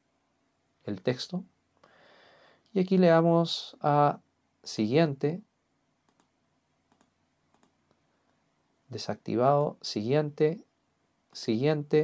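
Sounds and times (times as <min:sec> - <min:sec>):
computer mouse clicks: 0:06.1 - 0:06.3, 0:06.9 - 0:08.0.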